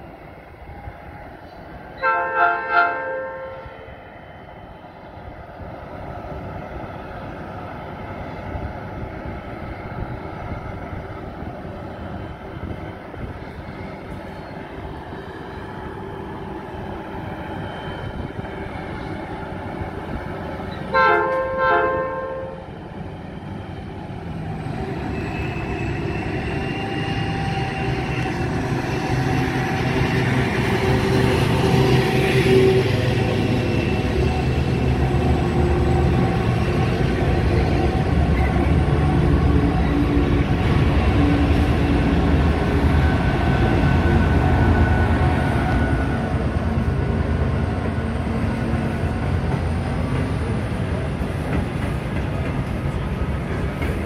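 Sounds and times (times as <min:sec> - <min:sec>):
diesel locomotive engines: 0:00.0 - 0:54.0
train horn blast: 0:02.0 - 0:03.8, 0:20.9 - 0:22.7.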